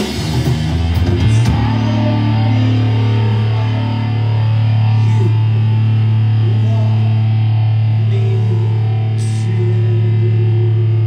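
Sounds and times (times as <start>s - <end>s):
distorted electric guitar: 0.0s - 11.0s
held low bass note: 0.0s - 11.0s.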